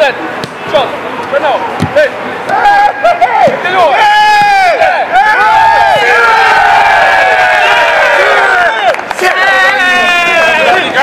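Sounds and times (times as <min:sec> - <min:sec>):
group shouting and cheering: 0:01.9 - 0:11.0.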